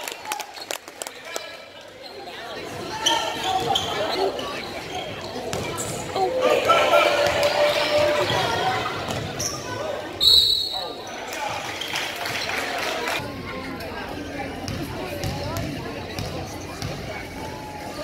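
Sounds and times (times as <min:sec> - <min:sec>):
spectators shouting: 0:06.2 - 0:09.1
referee's whistle blast: 0:10.2 - 0:11.0.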